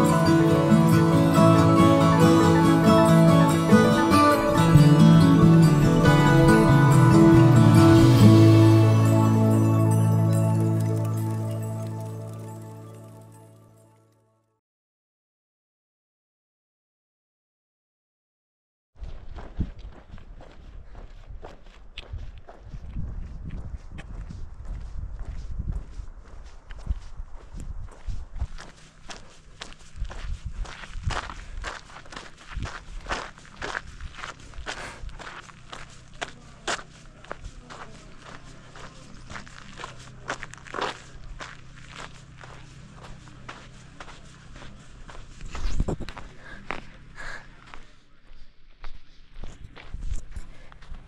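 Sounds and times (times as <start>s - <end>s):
footsteps crunching on dirt: 19.0s - 51.0s
faint low hum: 32.4s - 51.0s.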